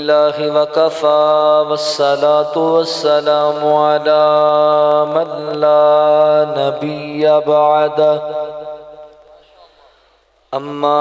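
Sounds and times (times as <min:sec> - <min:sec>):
echo: 0:00.0 - 0:11.0
man reciting over loudspeakers: 0:00.0 - 0:11.0.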